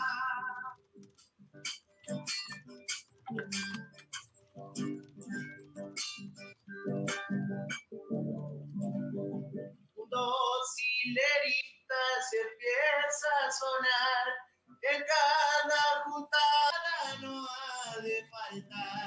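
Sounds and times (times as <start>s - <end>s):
man singing: 0.0s - 0.8s, 10.0s - 19.0s
acoustic guitar strumming: 0.0s - 10.1s, 16.4s - 19.0s.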